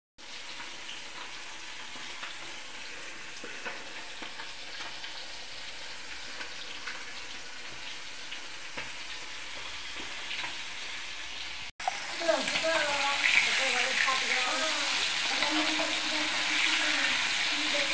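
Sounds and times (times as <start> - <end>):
oil sizzling in a pan: 0.2 - 17.9
small crackles and pops: 0.4 - 10.8.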